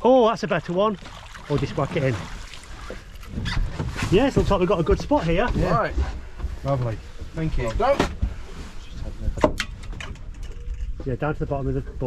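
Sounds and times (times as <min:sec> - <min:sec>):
knocks and clicks of handling net: 0:09.3 - 0:11.1.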